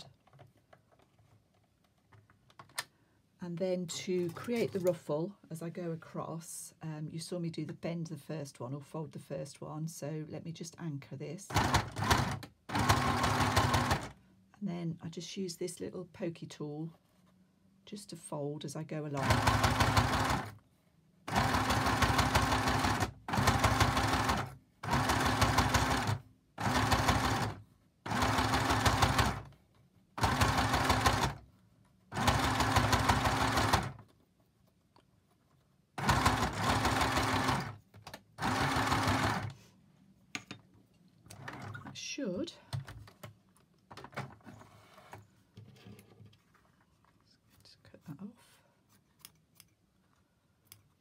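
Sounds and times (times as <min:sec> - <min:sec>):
sewing machine stitching: 0:11.5 - 0:14.2, 0:19.2 - 0:20.6, 0:21.3 - 0:29.5, 0:30.2 - 0:31.4, 0:32.1 - 0:34.0, 0:36.0 - 0:37.8, 0:38.4 - 0:39.6.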